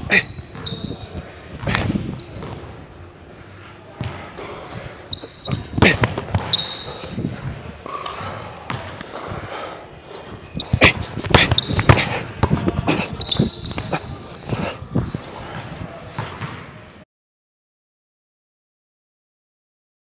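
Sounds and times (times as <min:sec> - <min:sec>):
sneaker squeaks: 0:00.0 - 0:02.8, 0:04.0 - 0:07.2, 0:10.0 - 0:15.2.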